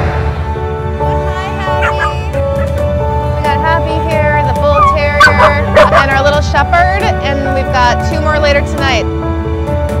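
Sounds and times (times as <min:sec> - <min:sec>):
background music: 0:00.0 - 0:10.0
dog yipping and whining: 0:01.8 - 0:02.7, 0:04.8 - 0:06.0.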